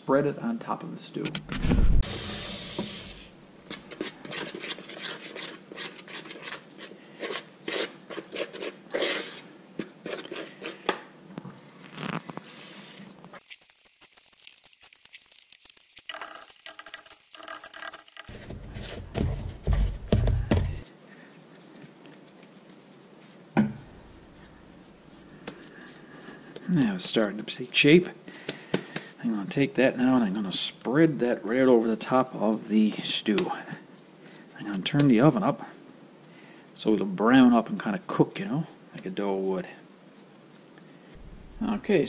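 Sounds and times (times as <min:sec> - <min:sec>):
low thumps: 0:01.3 - 0:02.1, 0:18.3 - 0:20.8, 0:41.2 - 0:42.0
hands mixing dough: 0:03.6 - 0:11.1, 0:13.4 - 0:17.5, 0:18.1 - 0:20.8.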